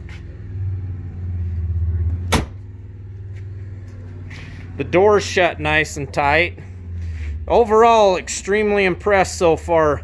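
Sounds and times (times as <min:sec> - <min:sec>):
low engine idle: 0:00.0 - 0:10.0
vehicle door shutting clunk: 0:02.2 - 0:02.7.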